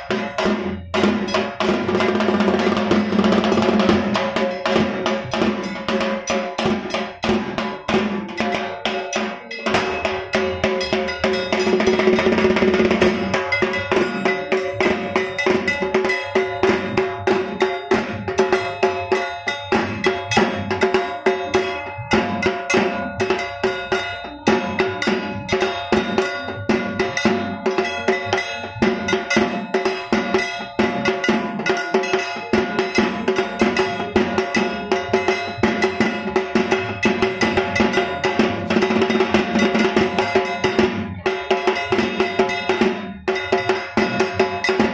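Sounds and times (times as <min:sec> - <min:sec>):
metallic bell-like percussion: 0:00.0 - 0:44.9.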